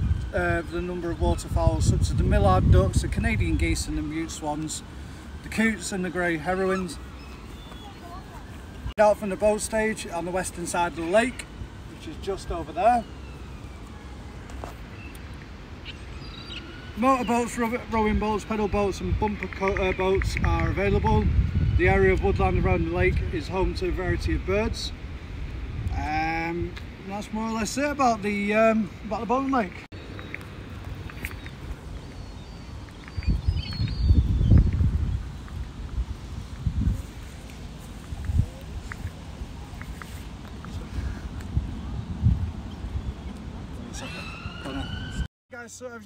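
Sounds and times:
wind buffeting microphone: 0.0 - 13.0, 16.0 - 27.4, 29.7 - 45.3
faint high bird calls: 6.4 - 8.9, 15.8 - 18.8, 31.2 - 34.8, 43.0 - 45.3.

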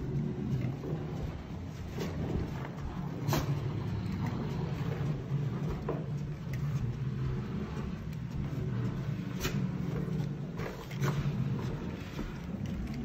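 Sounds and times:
dog sliding over carpet: 0.0 - 13.0.

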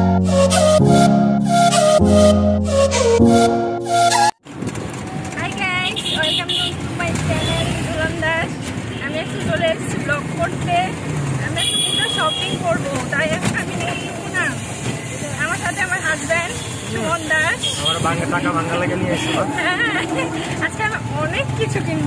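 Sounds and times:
rickshaw rumble and road noise: 4.3 - 22.0
woman talking: 5.4 - 14.6, 15.2 - 17.7, 18.9 - 22.0.

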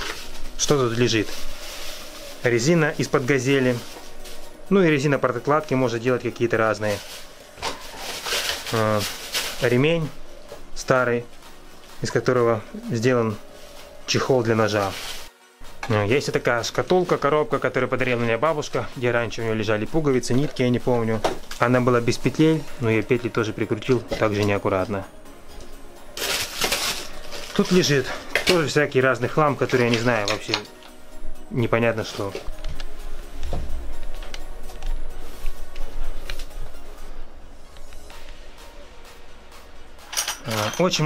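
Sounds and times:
plastic bags crinkling: 0.0 - 10.2, 26.1 - 28.9
plastic bags rustling: 0.0 - 15.3, 16.0 - 30.9, 31.8 - 33.1
man's voice: 15.8 - 25.1, 27.4 - 30.8.

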